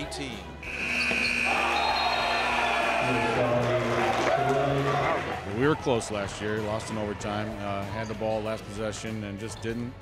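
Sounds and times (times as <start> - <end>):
high shrill note: 0.6 - 3.3
crowd cheering: 0.6 - 7.1.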